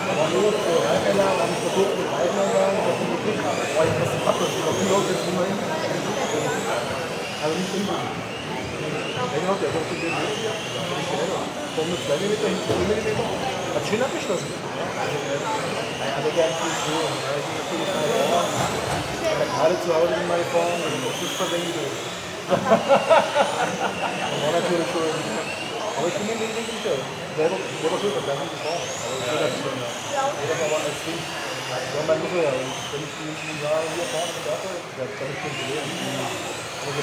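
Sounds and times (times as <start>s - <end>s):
rc car electric motors whining: 0.0s - 37.0s.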